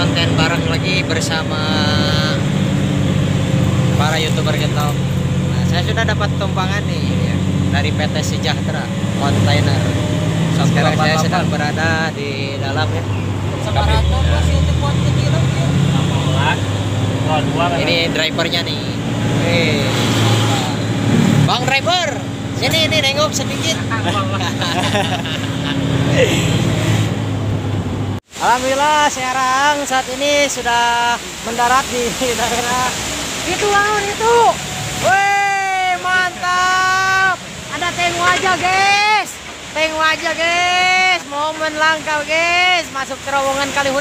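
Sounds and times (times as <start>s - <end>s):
man talking: 0.0s - 2.6s, 3.8s - 26.6s, 28.4s - 44.0s
truck engine drone from cab: 0.0s - 11.9s, 12.5s - 28.2s, 33.0s - 38.8s.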